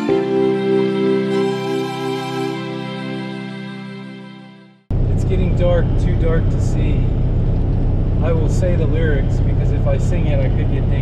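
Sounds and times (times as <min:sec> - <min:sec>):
engine and road noise drone: 0:04.9 - 0:11.0
voices: 0:05.1 - 0:07.2, 0:08.2 - 0:11.0.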